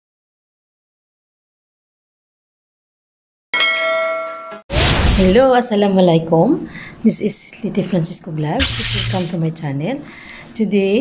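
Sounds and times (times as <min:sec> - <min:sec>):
metallic bell-like ding: 0:03.6 - 0:04.6.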